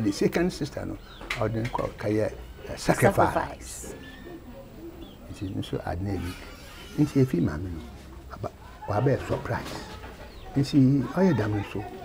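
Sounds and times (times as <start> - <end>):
chickens clucking: 0.0 - 12.0
man talking: 5.2 - 6.4, 7.0 - 9.9, 10.5 - 12.0.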